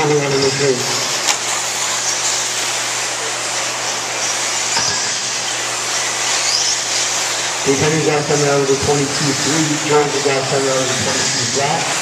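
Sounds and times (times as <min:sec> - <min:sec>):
electric toy cars motors whining: 0:00.0 - 0:12.0.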